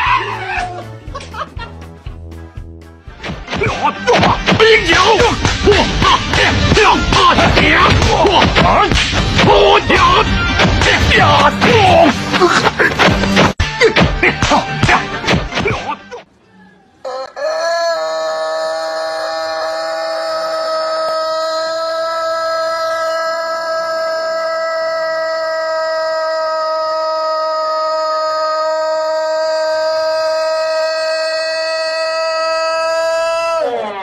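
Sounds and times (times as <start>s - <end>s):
rooster crowing: 16.6s - 31.0s.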